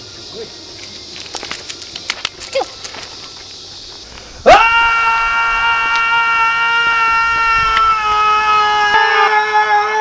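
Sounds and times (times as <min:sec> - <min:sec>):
dog paws clicking and scuffing: 0:00.8 - 0:04.0.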